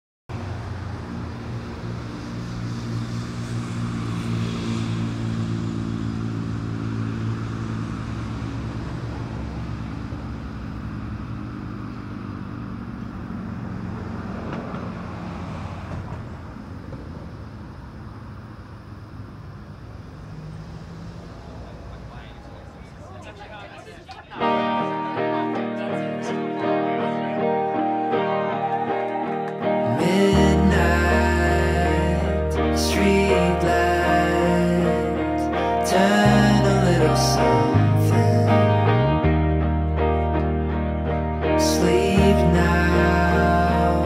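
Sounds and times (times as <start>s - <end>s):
low engine hum: 0.3s - 24.1s, 29.8s - 44.0s
passing traffic: 0.3s - 44.0s.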